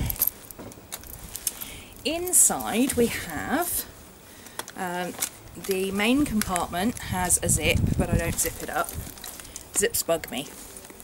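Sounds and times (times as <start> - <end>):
metal chain and clasp clinking: 0.0 - 2.8.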